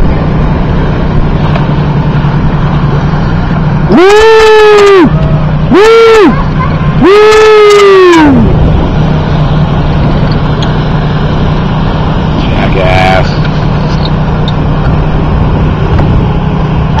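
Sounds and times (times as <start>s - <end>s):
boat engine droning: 0.0s - 17.0s
person calling out: 3.9s - 8.5s
wind noise: 8.1s - 12.7s.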